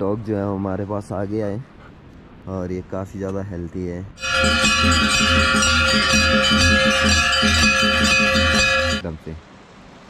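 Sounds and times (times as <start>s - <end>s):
brass bells ringing: 4.2s - 9.1s.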